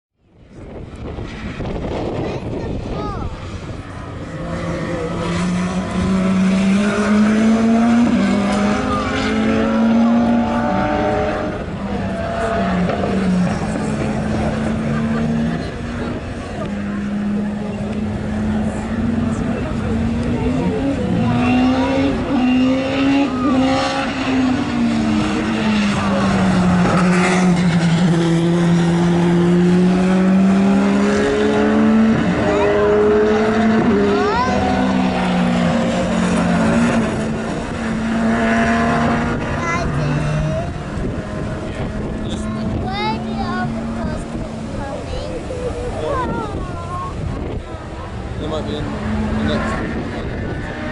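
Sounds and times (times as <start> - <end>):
racing car engines revving: 0.3 - 50.9.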